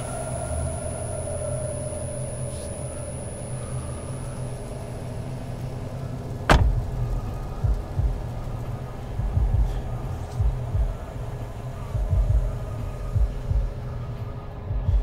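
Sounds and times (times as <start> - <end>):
low steady rumble: 0.0 - 15.0
loud bang: 6.5 - 6.8.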